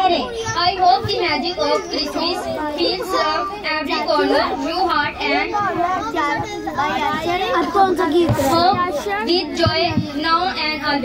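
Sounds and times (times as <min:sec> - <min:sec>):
girl reading aloud: 0:00.0 - 0:11.0.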